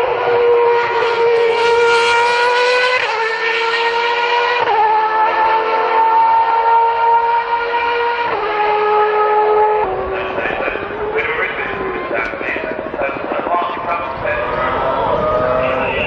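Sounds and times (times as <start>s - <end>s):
racing car engine revving: 0.0s - 16.0s.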